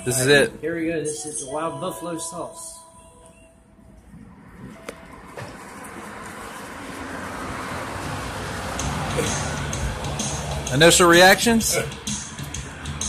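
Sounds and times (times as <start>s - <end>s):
vehicle rushing past: 4.2s - 13.0s.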